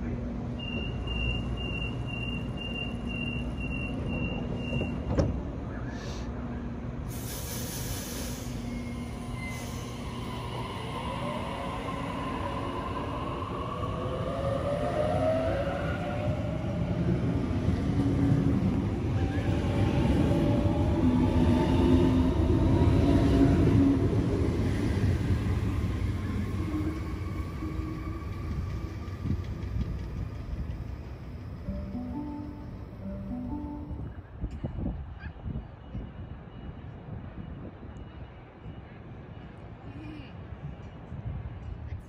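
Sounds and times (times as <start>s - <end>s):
train carriages running noise: 0.0s - 42.0s.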